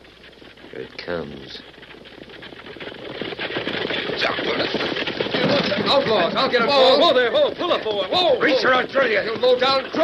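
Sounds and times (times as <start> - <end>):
galloping hoofbeats: 0.0 - 10.0.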